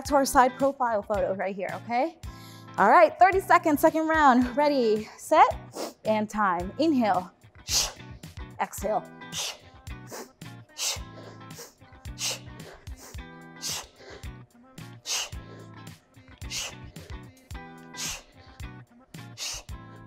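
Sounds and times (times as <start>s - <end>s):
background music: 0.0s - 20.0s
woman's sharp hissing exhales: 7.7s - 8.1s, 9.3s - 14.2s, 15.1s - 15.4s, 16.5s - 17.1s, 17.9s - 18.4s, 19.4s - 19.8s.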